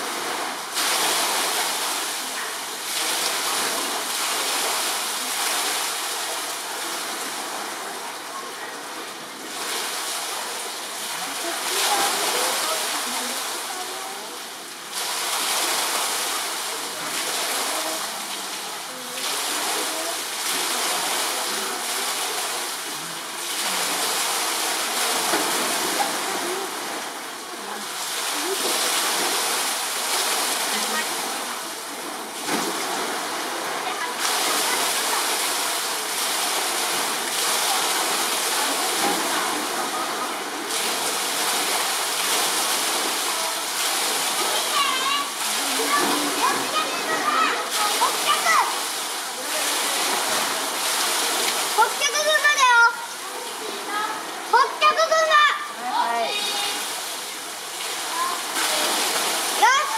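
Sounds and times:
running water rushing: 0:00.0 - 0:59.9
murmur of voices: 0:00.6 - 0:59.9.

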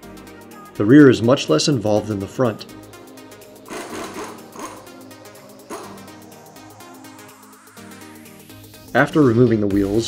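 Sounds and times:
impact wrench hammering: 0:03.7 - 0:05.0, 0:05.6 - 0:06.2.

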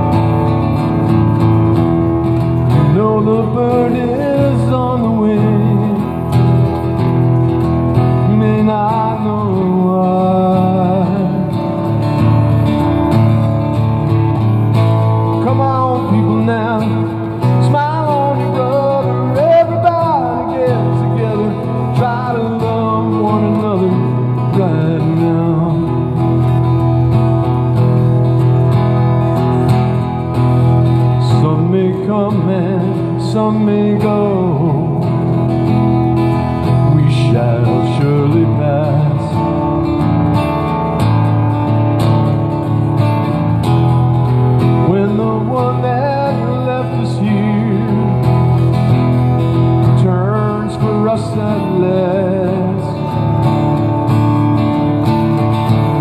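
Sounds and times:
man singing: 0:00.0 - 0:28.1, 0:28.8 - 0:41.2, 0:44.1 - 0:56.0
acoustic guitar strumming: 0:00.0 - 0:56.0.

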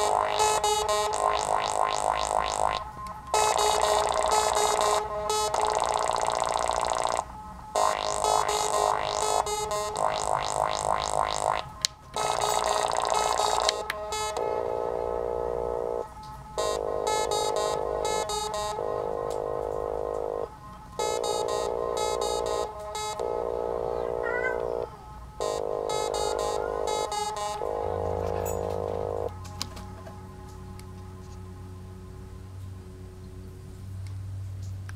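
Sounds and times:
buzzy synthesizer tones: 0:00.0 - 0:33.6
low hum: 0:00.0 - 0:34.6.

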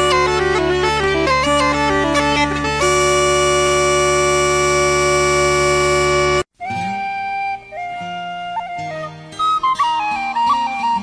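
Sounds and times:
bagpipes long note with drones: 0:00.0 - 0:06.5
high piping tone: 0:00.0 - 0:08.9.

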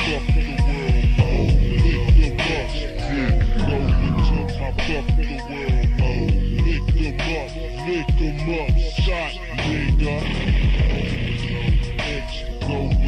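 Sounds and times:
rapping over a beat: 0:00.0 - 0:13.0
deep sliding bass hits: 0:01.4 - 0:06.6.

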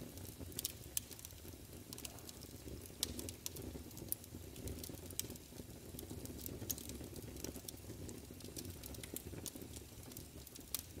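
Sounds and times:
vinyl record crackles and pops: 0:00.0 - 0:11.0.

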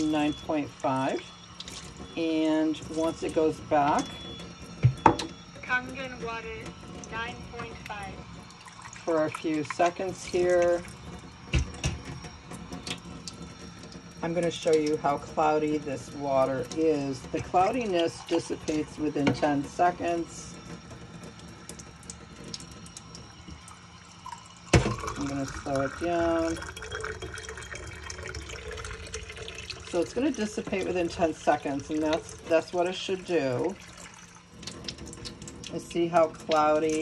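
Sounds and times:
water running into a steel sink: 0:00.0 - 0:37.0.

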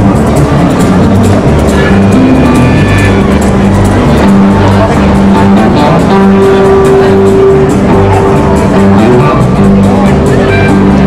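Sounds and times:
country band playing: 0:00.0 - 0:11.0.

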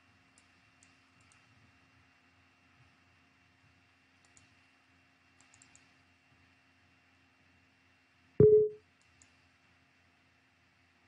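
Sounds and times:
faint clicks: 0:00.3 - 0:01.5, 0:04.2 - 0:04.6, 0:05.4 - 0:05.9, 0:09.0 - 0:09.4
computer system chime: 0:08.4 - 0:08.8.

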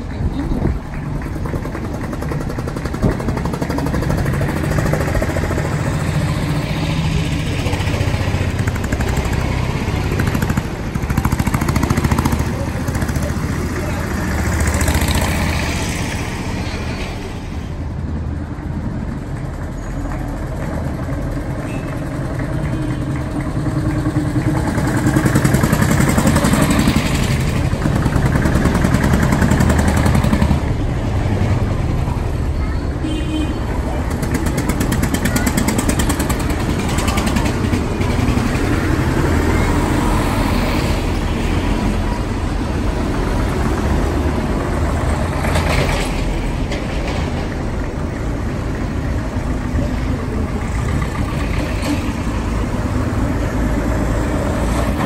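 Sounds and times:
vehicle engines driving past slowly: 0:00.0 - 0:33.0.

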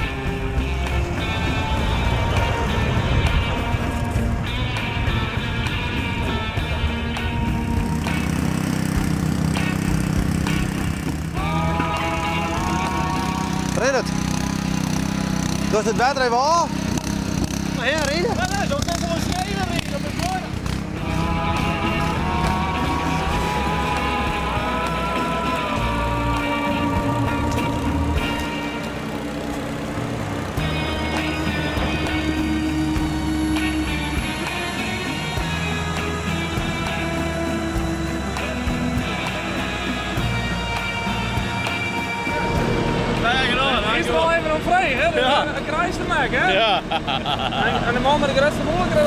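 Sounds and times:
farm machinery engine: 0:00.0 - 0:49.0
music with long held notes: 0:00.0 - 0:49.0.

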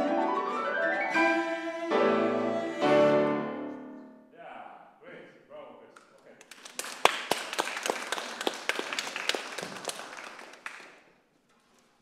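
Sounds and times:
small audience applauding: 0:06.1 - 0:11.2.

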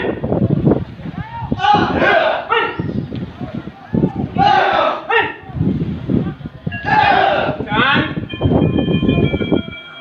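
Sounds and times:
group shouting short cries: 0:01.2 - 0:02.8, 0:04.3 - 0:05.4, 0:06.8 - 0:07.6.

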